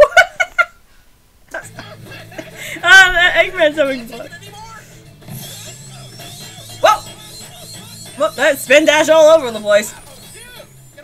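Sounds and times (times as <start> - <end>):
quiet background music: 1.5 - 11.0.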